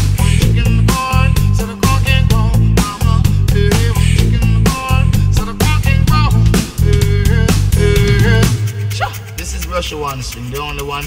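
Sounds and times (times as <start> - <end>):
bass line: 0.0 - 10.4
drum kit beat: 0.0 - 11.0.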